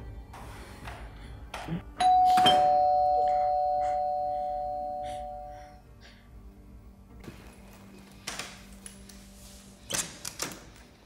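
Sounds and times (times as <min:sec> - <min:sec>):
two-tone doorbell chime: 0:02.0 - 0:05.6.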